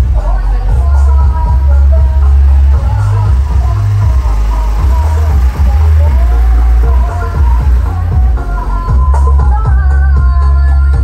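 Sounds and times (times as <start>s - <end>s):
loud music with booming bass: 0.0s - 11.0s.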